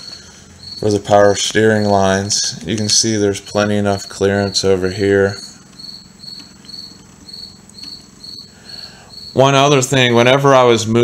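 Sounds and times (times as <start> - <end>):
cricket chirping: 0.0 - 10.7.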